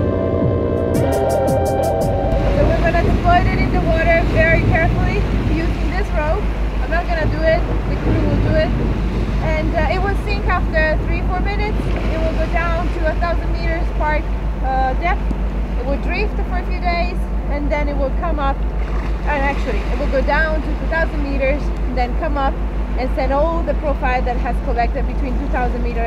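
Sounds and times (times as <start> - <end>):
high wavering squeals: 0.0 - 5.6
background music: 0.0 - 18.1
sea and deck noise: 0.0 - 26.0
ship engine throbbing: 0.0 - 26.0.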